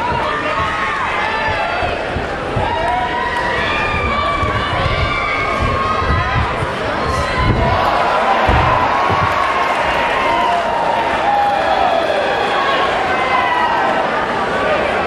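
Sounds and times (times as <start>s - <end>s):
crowd shouting and cheering: 0.0s - 15.0s.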